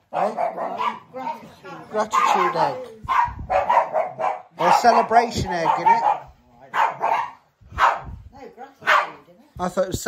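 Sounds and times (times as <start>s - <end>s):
dog barking: 0.1s - 1.4s, 2.1s - 8.2s, 8.8s - 9.2s.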